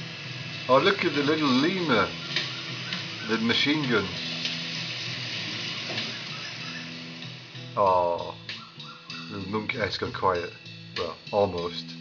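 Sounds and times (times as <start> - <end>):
low held music notes: 0.0 - 12.0
steady hiss: 0.0 - 12.0.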